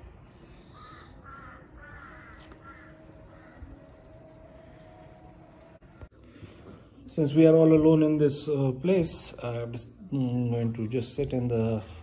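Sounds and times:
faint steady hum: 0.0 - 7.1
crow cawing: 0.6 - 5.3.

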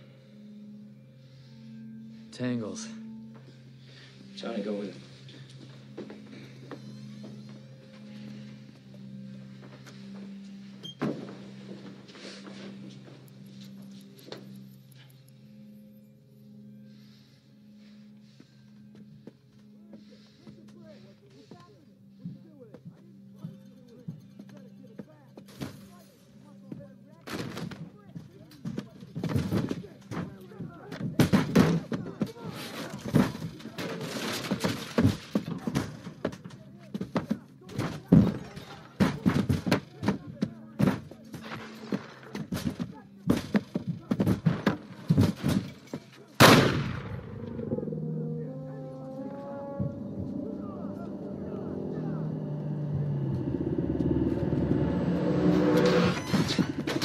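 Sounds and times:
sustained stepping tones: 2.9 - 26.0, 26.6 - 57.0.

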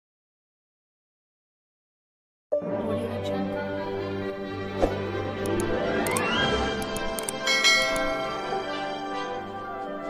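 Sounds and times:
background music: 2.5 - 10.0
mouse clicks: 5.4 - 7.4
notification bell chime: 7.4 - 8.7.

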